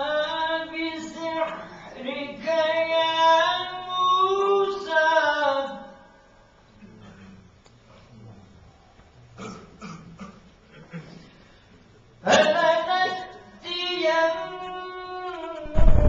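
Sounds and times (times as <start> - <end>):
person reciting melodically: 0.0 - 6.1, 12.2 - 15.9.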